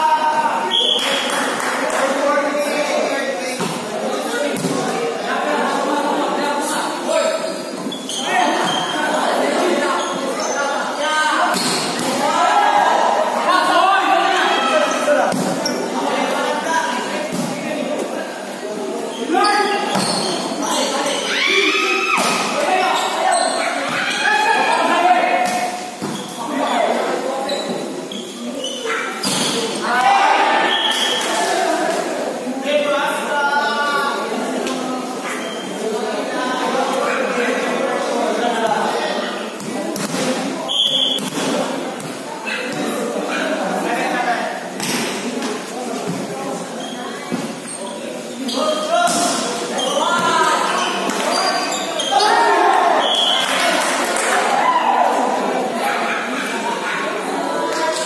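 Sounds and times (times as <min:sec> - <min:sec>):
chatter of people: 0:00.0 - 0:58.0
people talking and calling out: 0:00.0 - 0:58.0.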